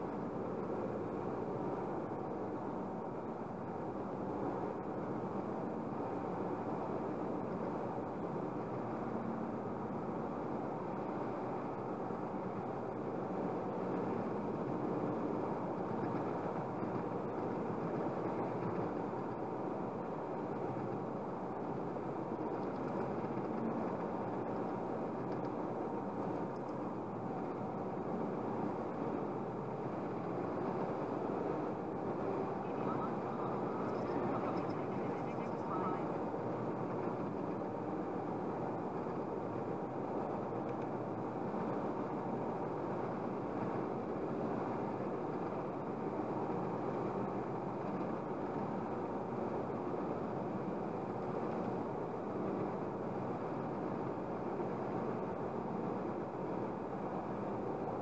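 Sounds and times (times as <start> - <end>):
car road and tyre noise: 0.0 - 58.0.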